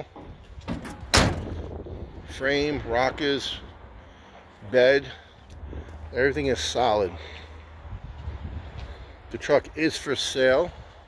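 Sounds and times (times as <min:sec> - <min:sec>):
truck door slamming: 0:00.2 - 0:01.8.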